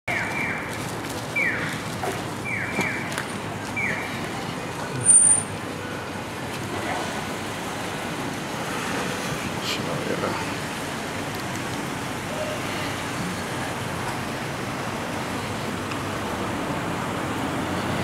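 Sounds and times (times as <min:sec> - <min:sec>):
traffic hum: 0:00.1 - 0:18.0.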